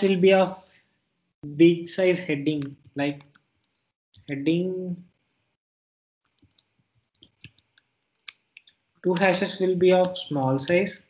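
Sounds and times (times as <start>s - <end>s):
soft keyboard clicks: 2.5s - 3.9s, 6.3s - 8.7s.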